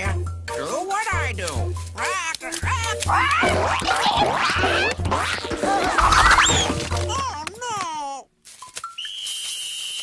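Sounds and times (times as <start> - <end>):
cartoon voice squawking: 2.0 - 8.2.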